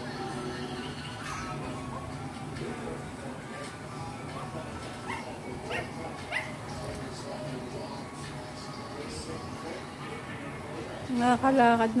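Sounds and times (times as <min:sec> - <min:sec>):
puppy yipping: 0:05.0 - 0:06.6.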